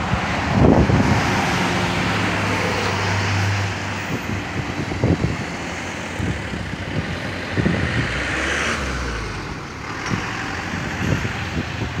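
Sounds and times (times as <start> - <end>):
motor vehicles running: 0.0 - 12.0
vehicle passing close by: 0.0 - 12.0.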